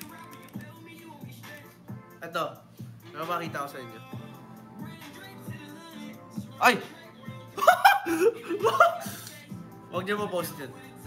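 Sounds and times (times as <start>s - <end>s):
faint background music: 0.0s - 11.0s
young man laughing: 7.4s - 9.3s.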